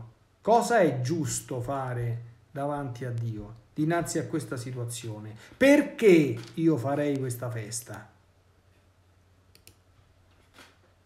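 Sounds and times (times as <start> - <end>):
faint short clicks: 9.5 - 9.8.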